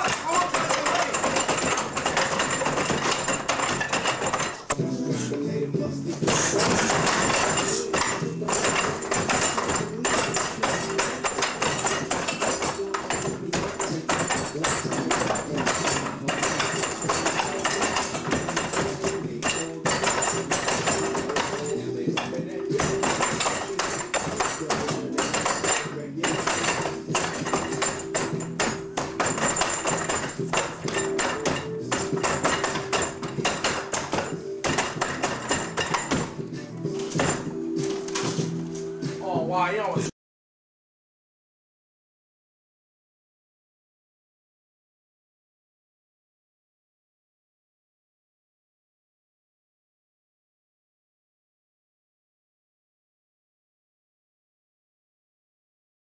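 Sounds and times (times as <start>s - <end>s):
hands striking wooden dummy: 0.0s - 4.8s, 6.2s - 38.6s
music with vocals: 0.0s - 40.1s.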